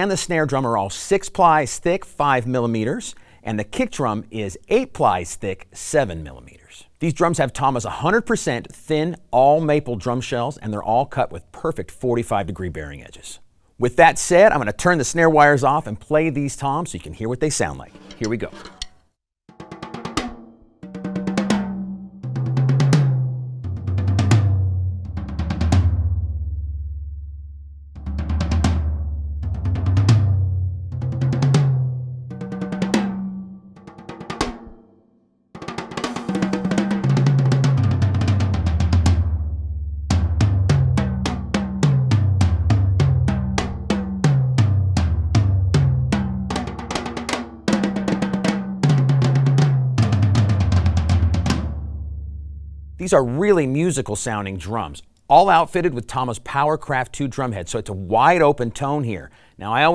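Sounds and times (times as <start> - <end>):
drum roll and tom fills: 19.5 - 26.6, 28.0 - 34.8, 35.6 - 52.2.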